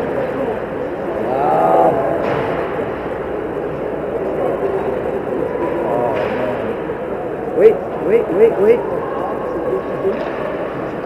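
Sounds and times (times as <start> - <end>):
hockey arena crowd din: 0.0 - 11.0.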